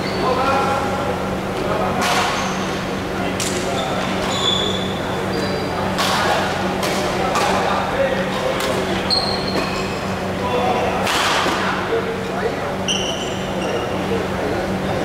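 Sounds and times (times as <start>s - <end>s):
shoes squeaking on wooden floor: 3.8s - 5.7s, 9.1s - 10.0s.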